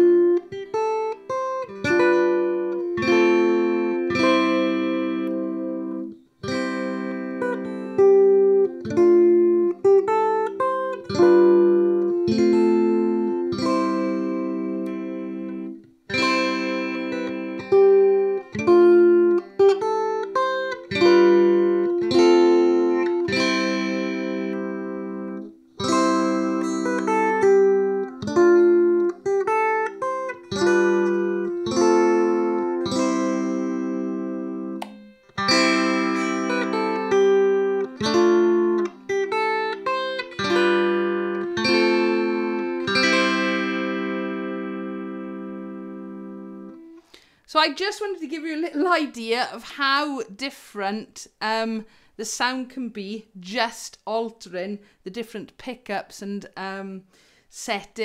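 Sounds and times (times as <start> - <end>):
electric ukulele chords: 0.0 - 47.3.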